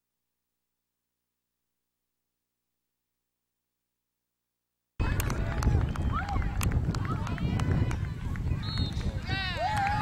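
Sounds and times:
wind rumble: 5.0s - 10.0s
spectators shouting: 9.2s - 10.0s.

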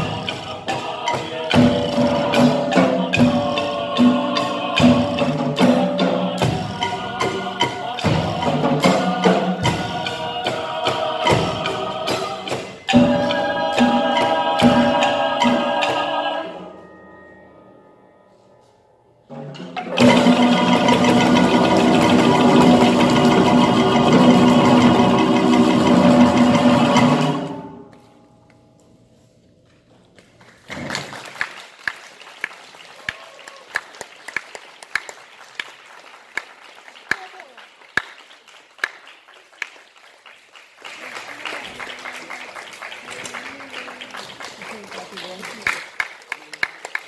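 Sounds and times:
choir and ensemble chord: 0.0s - 28.1s
audience applause: 30.2s - 47.0s.

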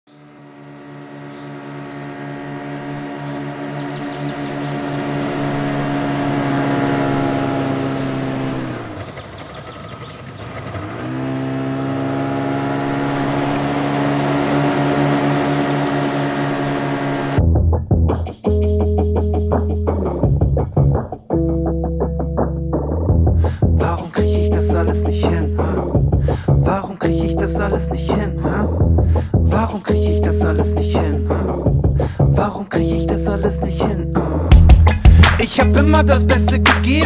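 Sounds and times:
jet ski engine running: 0.1s - 17.4s
rock song: 17.4s - 37.0s.

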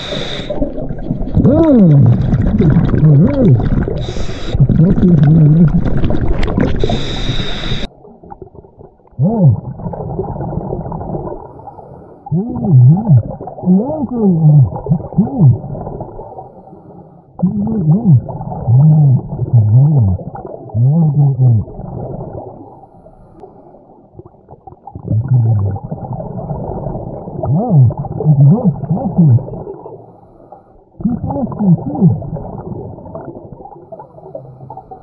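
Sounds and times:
underwater breath bubbling: 0.0s - 8.4s, 9.2s - 35.0s
muffled humming exclamation: 1.4s - 5.8s, 9.2s - 9.7s, 12.3s - 15.6s, 17.4s - 20.2s, 27.4s - 29.6s, 31.0s - 32.2s.

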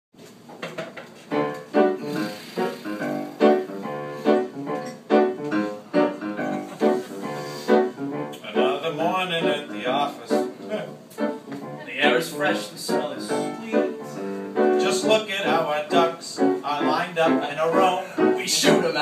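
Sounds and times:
piano repeated chords: 1.3s - 19.0s.

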